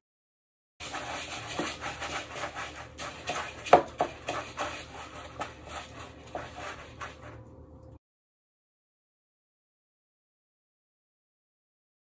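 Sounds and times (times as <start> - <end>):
hands rubbing breadcrumbs on chicken: 0.8 - 7.5.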